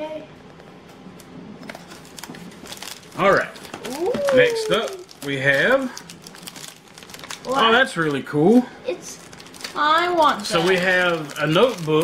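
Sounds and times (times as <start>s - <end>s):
packaging rustling: 1.6s - 8.4s, 9.1s - 12.0s.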